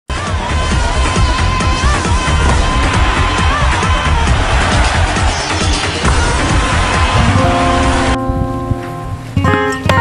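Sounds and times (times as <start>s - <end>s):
dense hissing wash: 3.0s - 9.3s.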